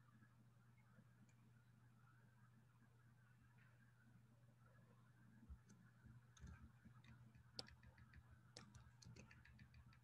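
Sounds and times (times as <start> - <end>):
low steady hum: 0.0 - 10.0
computer keyboard typing: 6.3 - 10.0.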